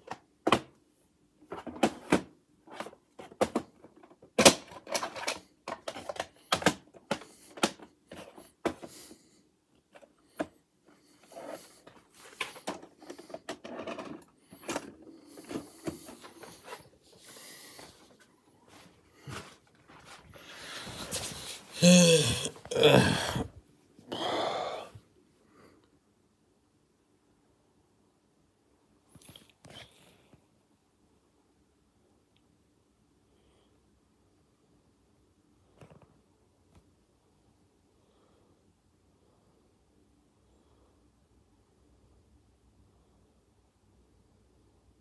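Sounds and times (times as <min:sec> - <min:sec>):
plastic cassette case clicks and rattles: 0:03.3 - 0:08.3.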